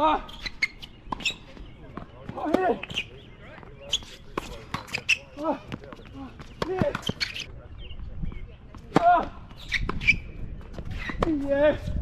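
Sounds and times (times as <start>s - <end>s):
tennis ball bouncing: 0.6s - 7.5s
racket hitting tennis ball: 3.9s - 7.4s.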